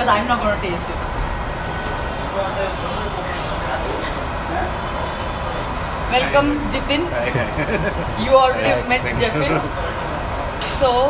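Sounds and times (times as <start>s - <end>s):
loud steady background noise: 0.0s - 11.0s
indistinct voices: 2.1s - 11.0s.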